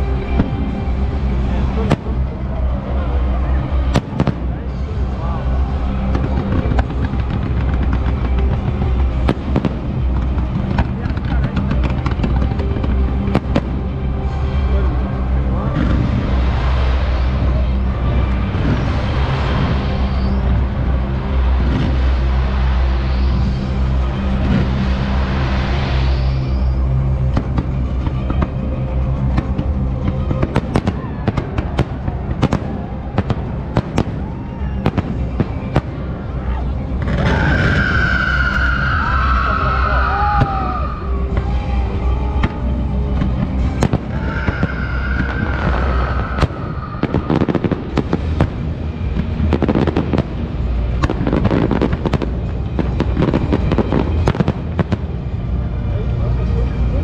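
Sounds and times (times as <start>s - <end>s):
fireworks bangs and crackles: 0.0s - 57.0s
high whistling fireworks: 0.0s - 57.0s
low rumble: 0.0s - 57.0s.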